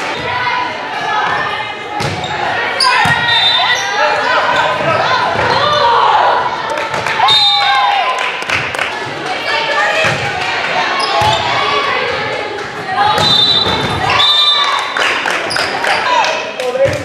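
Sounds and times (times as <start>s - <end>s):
people calling and shouting: 0.0s - 17.0s.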